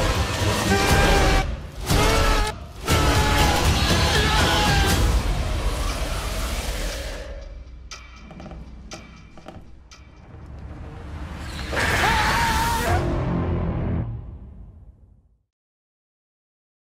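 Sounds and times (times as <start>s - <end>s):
dense horror trailer music: 0.0s - 15.4s.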